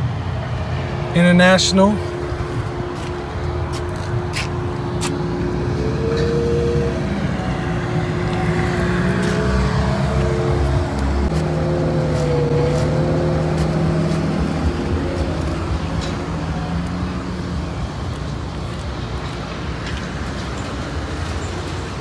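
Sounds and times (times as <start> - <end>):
vehicle engine running: 1.9 - 22.0.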